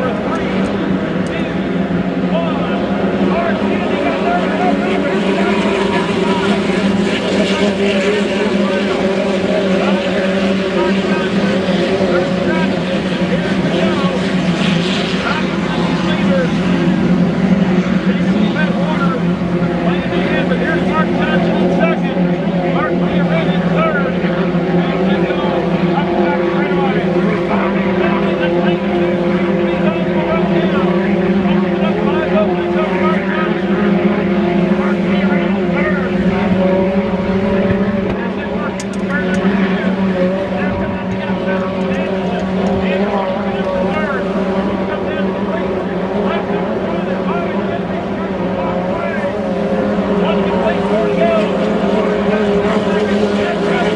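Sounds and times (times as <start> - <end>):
racing boat engines droning: 0.0 - 53.9.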